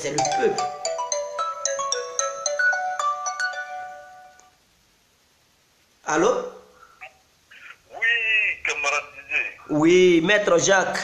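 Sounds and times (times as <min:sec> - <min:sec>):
mobile phone ringtone: 0:00.0 - 0:04.5.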